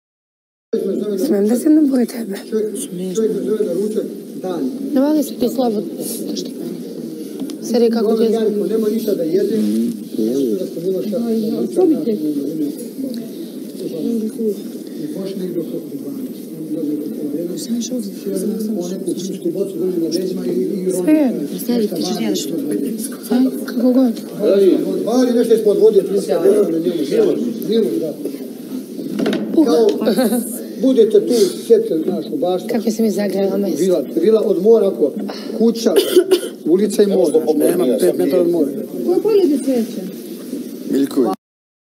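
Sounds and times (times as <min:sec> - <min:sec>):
chatter of people talking: 0:00.8 - 0:41.4
person speaking clearly: 0:07.2 - 0:38.4.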